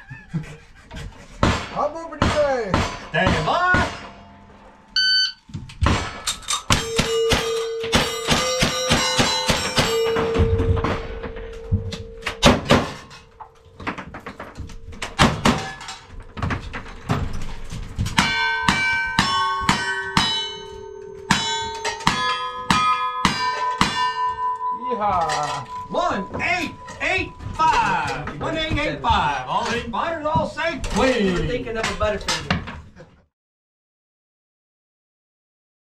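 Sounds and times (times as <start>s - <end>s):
steel plates ringing: 3.0s - 30.2s.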